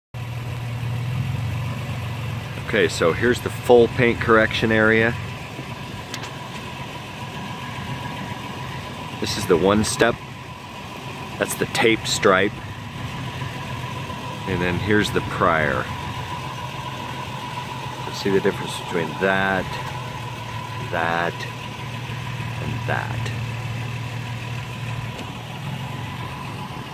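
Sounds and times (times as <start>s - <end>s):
vehicle engine idling: 0.2s - 26.9s.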